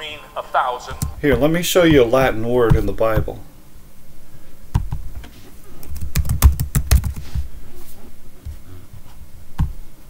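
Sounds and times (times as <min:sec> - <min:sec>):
computer keyboard typing: 0:05.8 - 0:07.2.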